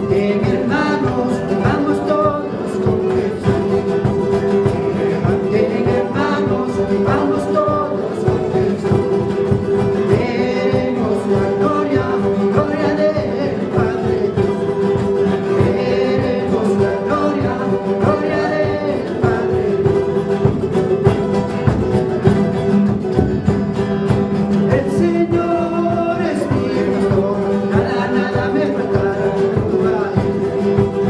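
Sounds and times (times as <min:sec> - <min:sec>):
band playing live: 0:00.0 - 0:31.0
bass drum beating: 0:00.0 - 0:31.0
strummed guitars: 0:00.0 - 0:31.0
voices singing held notes: 0:00.0 - 0:31.0.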